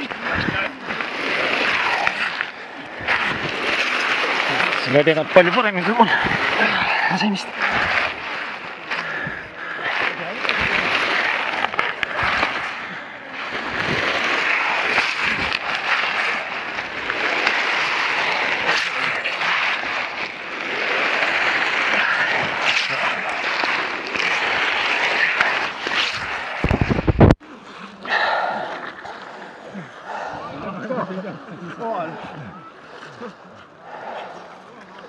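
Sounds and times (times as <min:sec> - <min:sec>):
camera scraping over ice: 0:00.0 - 0:27.4.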